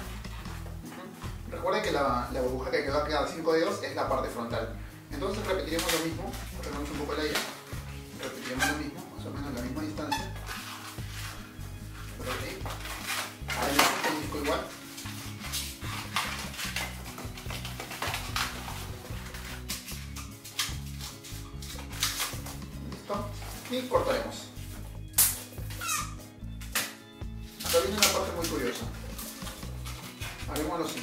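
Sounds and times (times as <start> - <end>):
background music: 0.0 - 31.0
balloons squeaking as twisted: 5.2 - 26.8, 27.4 - 31.0.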